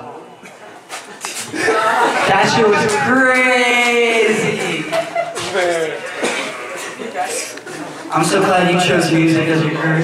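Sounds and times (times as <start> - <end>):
person speaking: 1.6 - 10.0
low murmuring voices: 4.4 - 10.0.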